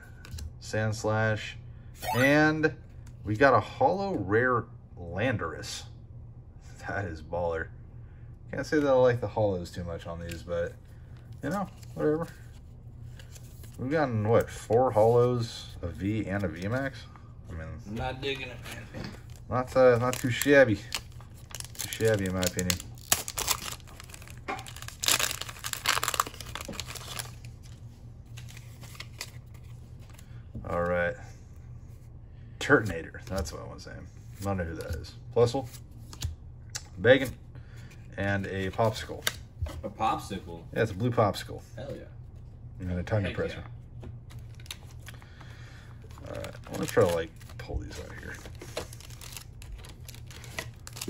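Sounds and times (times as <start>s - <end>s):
foil wrapper tearing and crinkling: 19.8s - 27.6s, 46.2s - 51.0s.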